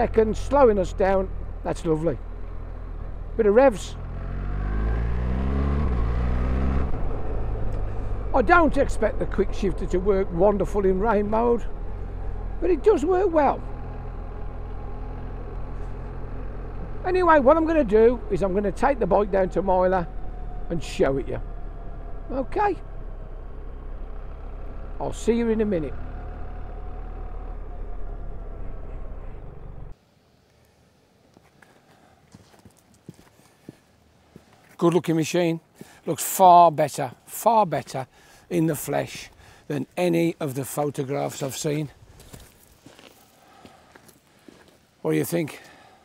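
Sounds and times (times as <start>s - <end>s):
motorcycle engine droning: 0.0s - 30.0s
faint footsteps: 31.3s - 34.8s, 42.0s - 44.9s.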